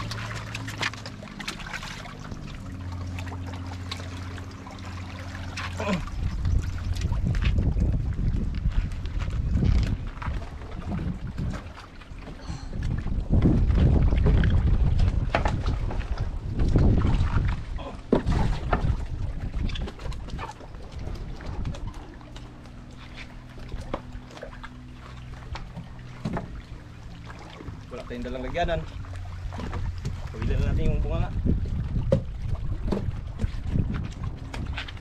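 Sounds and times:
wind rumbling on microphone: 0:04.5 - 0:35.0
knocks in wooden boat: 0:25.7 - 0:26.6, 0:32.0 - 0:34.9.

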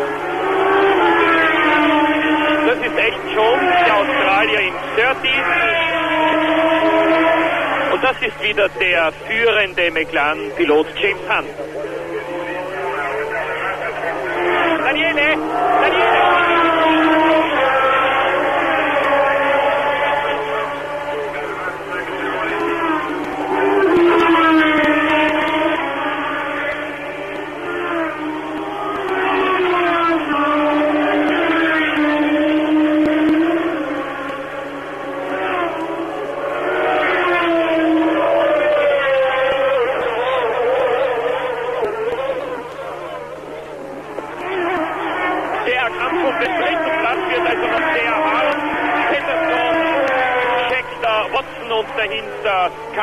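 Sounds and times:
racing car engines at high revs: 0:00.0 - 0:53.0.

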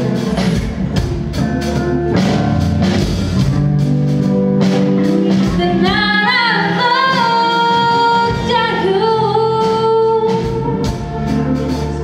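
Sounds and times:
band accompaniment: 0:00.0 - 0:12.0
woman singing ballad: 0:05.4 - 0:12.0.

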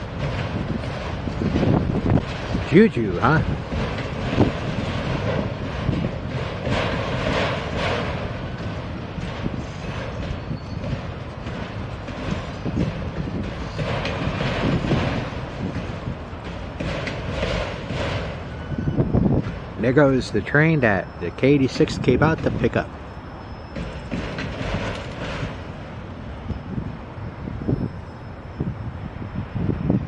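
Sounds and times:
rail cars clacking and rattling: 0:00.0 - 0:30.0
train wheels rumbling on rail: 0:00.0 - 0:30.0.

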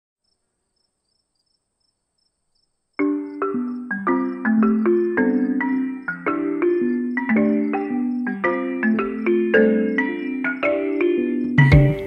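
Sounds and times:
crickets chirping: 0:00.2 - 0:12.0.

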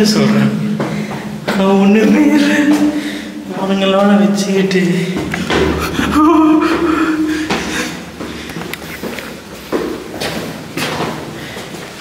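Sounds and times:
footsteps on concrete stairs: 0:00.0 - 0:12.0.

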